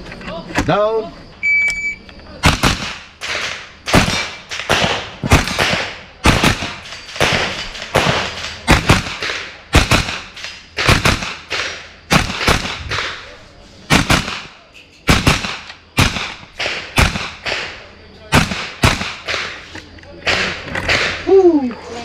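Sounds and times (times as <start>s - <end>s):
gunshots with echo: 2.4s - 21.3s.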